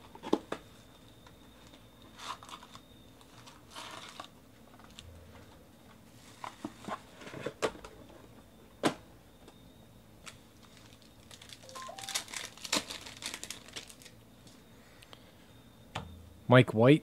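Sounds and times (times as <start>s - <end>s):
foil card packs crinkling: 2.2s - 5.0s, 10.2s - 14.2s.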